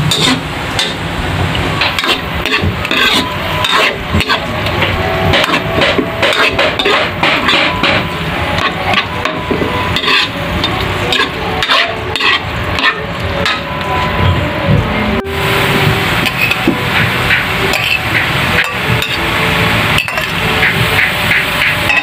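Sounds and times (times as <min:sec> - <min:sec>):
metal ladle scraping a wok: 0:00.0 - 0:01.0, 0:01.8 - 0:14.4, 0:16.2 - 0:22.0
frying sizzle: 0:00.0 - 0:14.4, 0:15.2 - 0:22.0.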